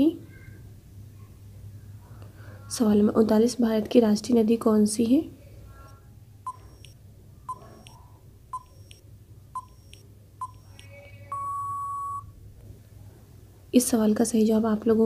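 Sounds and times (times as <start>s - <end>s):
long timer beep: 6.5s - 8.0s, 8.6s - 9.0s, 9.6s - 12.3s
short timer beeps: 6.5s - 8.0s, 8.6s - 9.0s, 9.6s - 12.3s.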